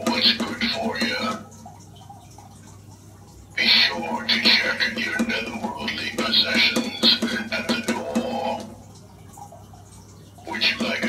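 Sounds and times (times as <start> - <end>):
recorded voice phrase from speaker: 0.0 - 1.5, 3.6 - 8.7, 10.4 - 11.0.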